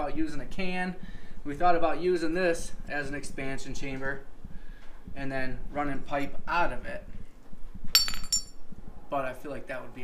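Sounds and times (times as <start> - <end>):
light metallic clinks: 8.0 - 8.6.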